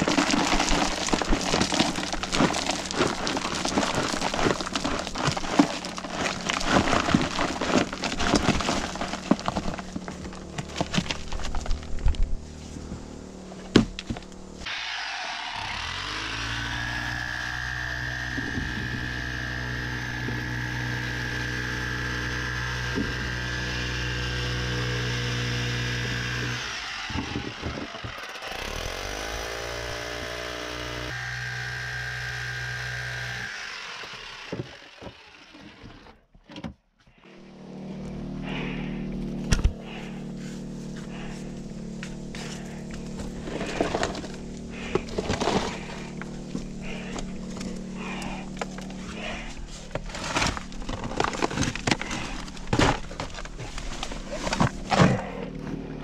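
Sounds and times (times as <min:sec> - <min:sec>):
jackhammer hammering rock: 0:00.0 - 0:11.6, 0:14.6 - 0:36.1, 0:41.0 - 0:53.5.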